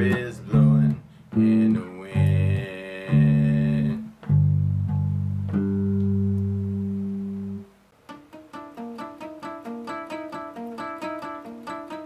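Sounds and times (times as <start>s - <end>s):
bass guitar note ringing: 0.0s - 7.7s.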